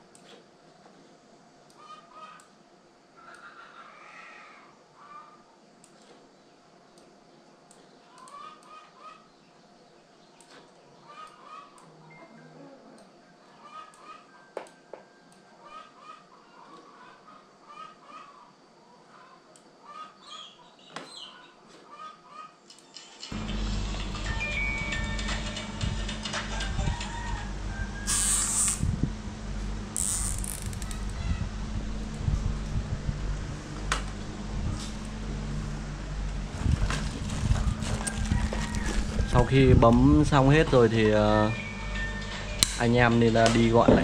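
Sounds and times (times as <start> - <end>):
steady hum: 23.3 - 44.0
cable ties ratcheting: 30.0 - 31.1.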